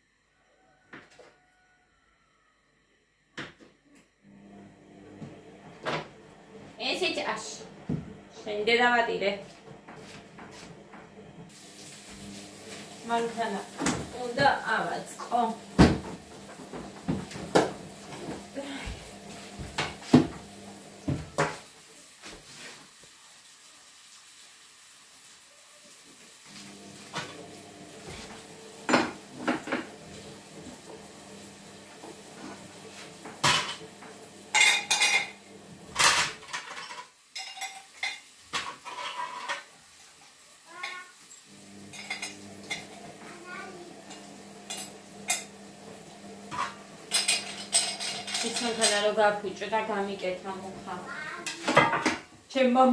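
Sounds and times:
metal grinder parts clanking: 0:46.5 - 0:49.1.

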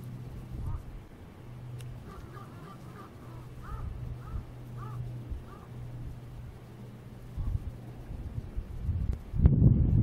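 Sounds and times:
steady low hum: 0:00.0 - 0:10.0
chirping animal calls: 0:00.6 - 0:01.0, 0:02.0 - 0:07.8.

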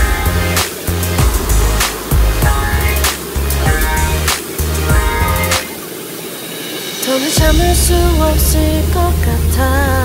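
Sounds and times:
background music with a beat: 0:00.0 - 0:09.6
waterfall rushing: 0:00.0 - 0:09.6.

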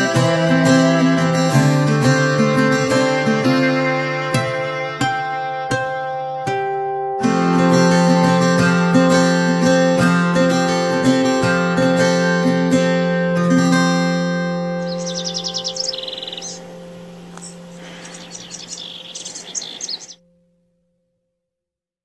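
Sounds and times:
acoustic guitar music: 0:00.0 - 0:21.0
birds chirping in high trills: 0:14.6 - 0:20.2.

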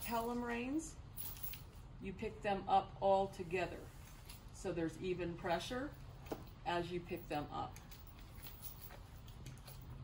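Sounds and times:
bridle and reins clicking: 0:00.0 - 0:02.0, 0:05.9 - 0:10.0
quiet low hum: 0:00.0 - 0:10.0.

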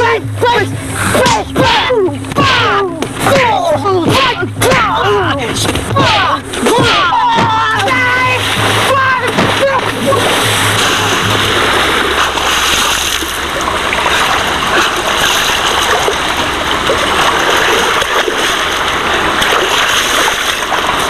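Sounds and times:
shouting: 0:00.0 - 0:10.3
low hum: 0:00.0 - 0:21.0
person splashing in water: 0:05.8 - 0:21.0.

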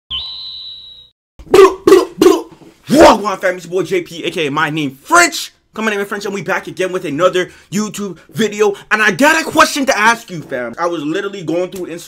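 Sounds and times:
high beep-like tone: 0:00.1 - 0:01.1.

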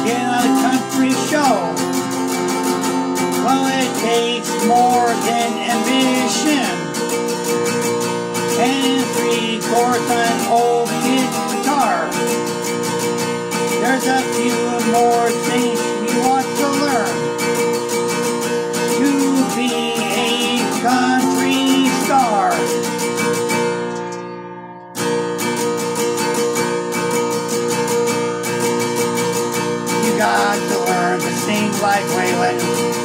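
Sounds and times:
man singing: 0:00.0 - 0:02.1, 0:03.3 - 0:07.2, 0:08.4 - 0:12.6, 0:13.7 - 0:23.0, 0:29.9 - 0:33.0
acoustic guitar strummed: 0:00.0 - 0:33.0.

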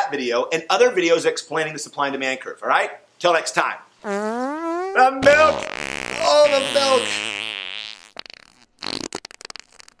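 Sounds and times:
comic fart noise: 0:04.0 - 0:10.0.

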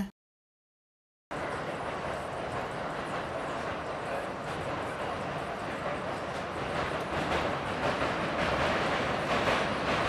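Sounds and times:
subway train running: 0:01.3 - 0:10.0.

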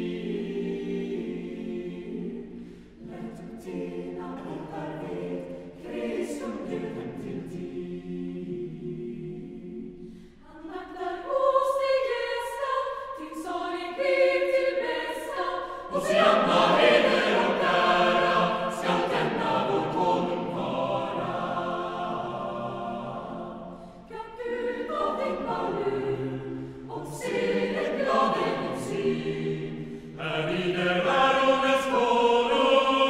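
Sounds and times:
choir singing: 0:00.0 - 0:33.0.

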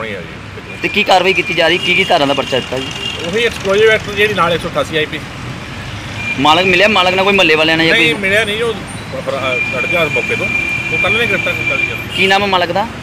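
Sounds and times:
man speaking: 0:00.0 - 0:05.3, 0:06.4 - 0:12.7
street noise: 0:00.0 - 0:13.0.

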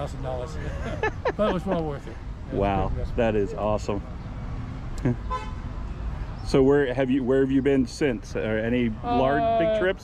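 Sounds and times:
person laughing: 0:00.6 - 0:02.2
horn toot: 0:05.2 - 0:05.7.

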